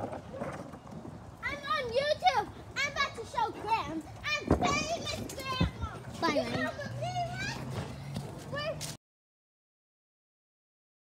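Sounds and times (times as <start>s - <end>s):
children calling and chattering: 0.2s - 9.0s.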